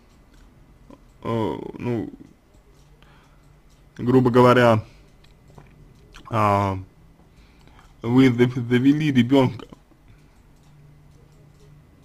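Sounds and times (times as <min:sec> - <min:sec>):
faint clicks: 0:00.0 - 0:04.1, 0:04.9 - 0:06.4, 0:09.6 - 0:12.0.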